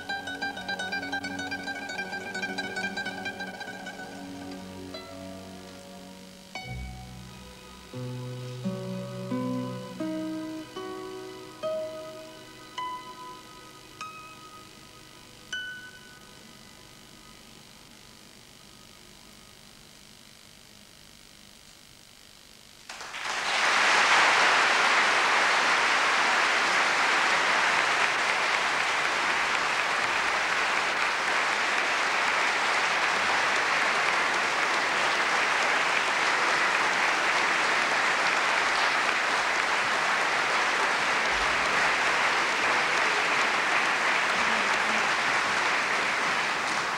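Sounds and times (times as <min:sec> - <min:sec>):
audience applauding: 0:00.0 - 0:06.6, 0:22.9 - 0:46.9.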